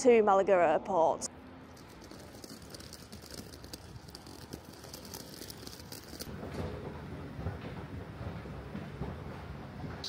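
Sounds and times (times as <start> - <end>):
faint street background: 0.0 - 10.0.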